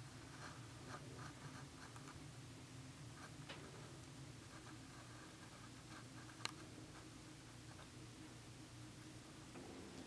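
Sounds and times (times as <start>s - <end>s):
faint scratching: 0.0s - 8.0s
low steady hum: 0.0s - 10.0s.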